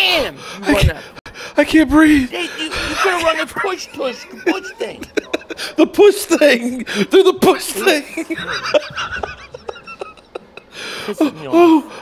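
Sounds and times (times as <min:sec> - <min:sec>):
man laughing breathlessly: 0:02.6 - 0:03.2, 0:04.3 - 0:05.8.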